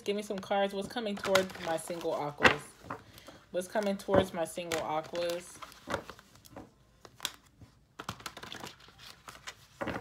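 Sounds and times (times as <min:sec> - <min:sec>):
cards being shuffled: 0:01.1 - 0:10.0.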